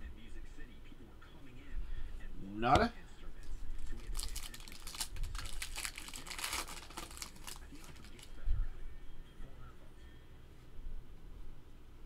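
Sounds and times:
card pack wrapper crinkling: 3.7s - 8.3s.

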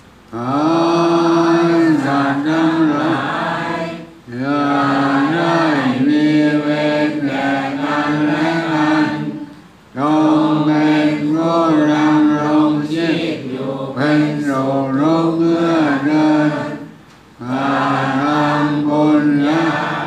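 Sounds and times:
chanting in level recitation tone: 0.3s - 20.0s.

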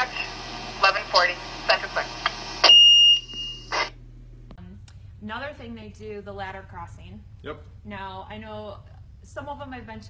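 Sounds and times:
radio hiss: 0.0s - 2.7s, 3.6s - 4.0s
loud high radio beep: 0.0s - 3.9s.

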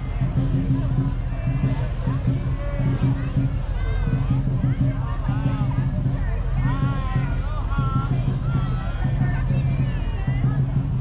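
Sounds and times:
car engine rumble: 0.0s - 11.0s
chatter of voices: 0.0s - 11.0s.

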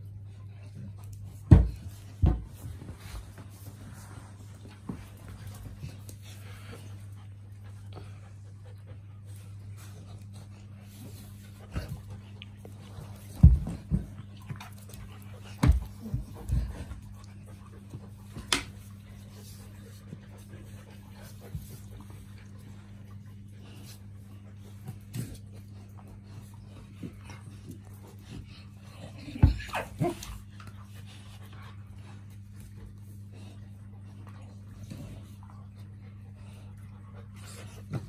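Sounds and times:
dogs growling and scuffling: 0.0s - 38.0s
steady low hum: 0.0s - 38.0s
dogs fighting: 27.0s - 31.5s.

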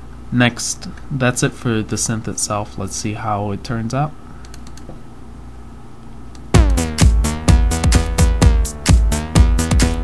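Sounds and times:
clicks: 4.4s - 5.0s, 6.0s - 6.5s
buzzy synthesizer notes: 6.5s - 10.0s
kick drum beat: 6.5s - 10.0s.

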